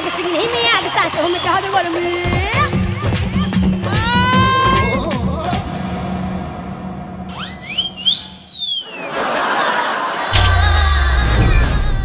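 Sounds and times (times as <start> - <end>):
comic whistle sound effect: 7.3 - 9.2, 10.3 - 11.9.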